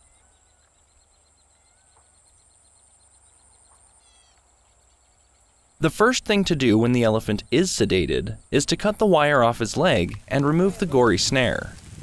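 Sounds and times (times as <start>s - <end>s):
bird chirps: 0.0s - 5.9s
person narrating: 5.8s - 11.8s.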